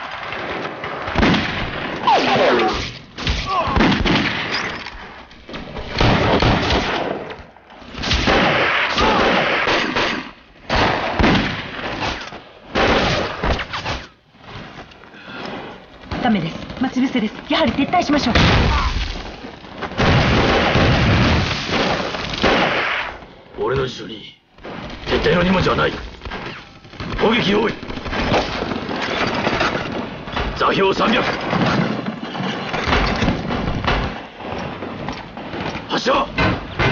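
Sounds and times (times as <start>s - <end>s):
rifle and machine-gun fire: 0.0s - 14.7s, 15.6s - 23.3s, 24.6s - 36.9s
rapid gunfire: 16.0s - 23.2s, 24.6s - 32.0s.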